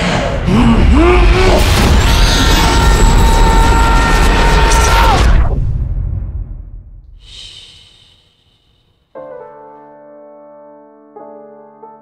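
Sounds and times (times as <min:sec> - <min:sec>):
loud roar: 0:00.0 - 0:05.5.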